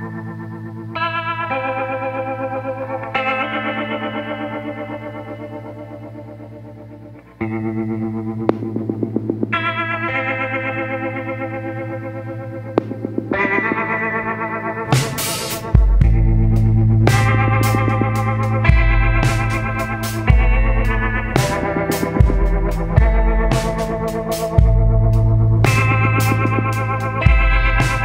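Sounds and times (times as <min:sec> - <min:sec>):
sustained instrumental chords: 0:00.0 - 0:28.0
sharp hits: 0:12.8 - 0:24.9.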